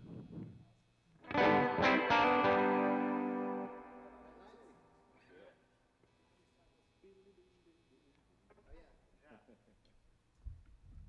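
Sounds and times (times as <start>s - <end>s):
electric guitar chord ringing: 1.2s - 4.9s.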